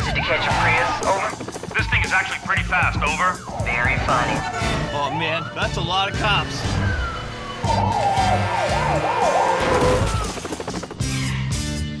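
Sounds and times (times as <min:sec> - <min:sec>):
background music: 0:00.0 - 0:12.0
police siren yelping: 0:01.8 - 0:10.6.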